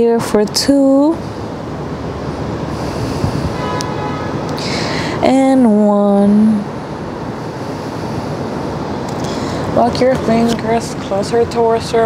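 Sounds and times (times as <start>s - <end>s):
city noise: 0.0s - 12.0s.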